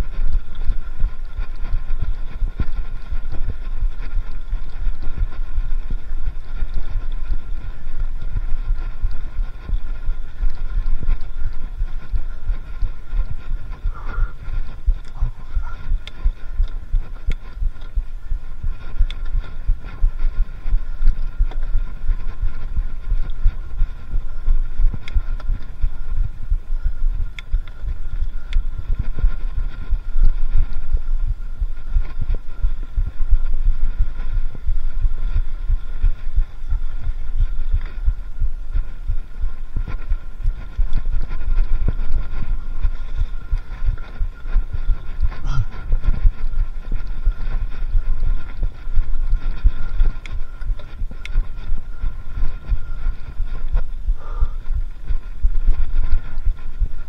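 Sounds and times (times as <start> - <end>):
wind and vibration rumble: 0.0 - 57.0.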